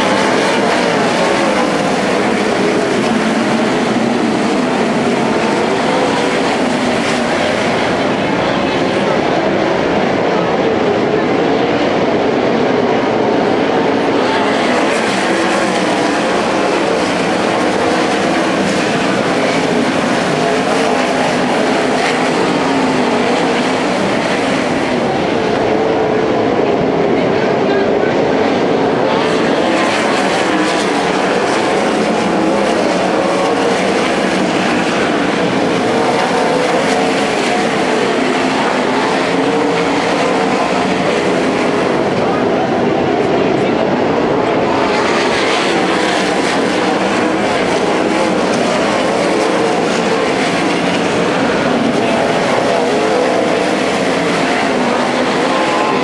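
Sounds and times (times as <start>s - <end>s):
race car engines passing: 0.0s - 56.0s.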